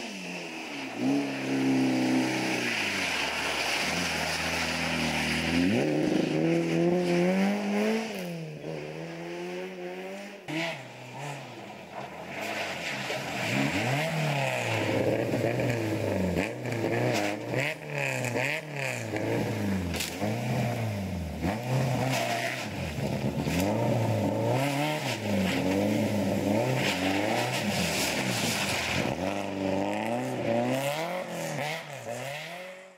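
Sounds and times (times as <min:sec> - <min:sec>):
rally car engines revving: 0:00.0 - 0:32.9.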